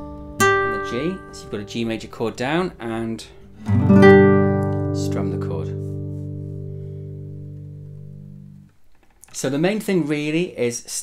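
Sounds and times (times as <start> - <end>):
classical guitar chord ringing: 0.0 - 8.7.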